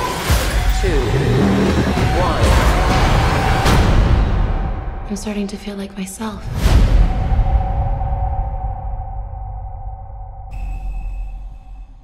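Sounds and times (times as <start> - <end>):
deep rumbling drone: 6.5 - 12.0
high ringing electronic tone: 10.4 - 12.0.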